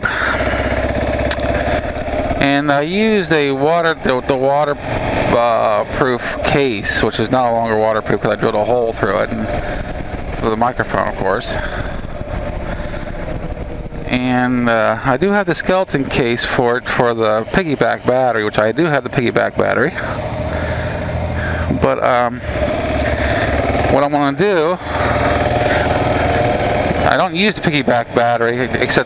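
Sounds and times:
motorcycle engine running: 0.0 - 29.0
road noise: 0.0 - 29.0.

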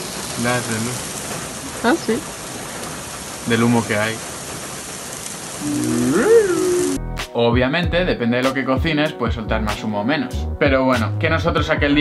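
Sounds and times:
mushroom sizzling on a griddle: 0.0 - 7.0
person's drawn-out wordless vocal: 5.6 - 7.0.

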